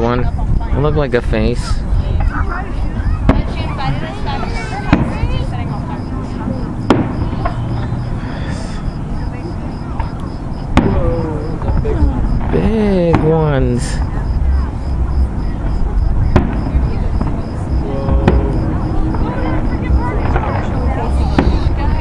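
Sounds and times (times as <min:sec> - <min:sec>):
fireworks booming: 0:01.6 - 0:22.0
low rumble: 0:14.0 - 0:22.0.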